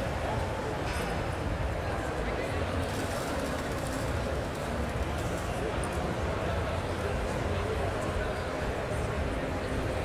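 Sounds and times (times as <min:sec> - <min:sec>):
exhibition hall din: 0:00.0 - 0:10.0.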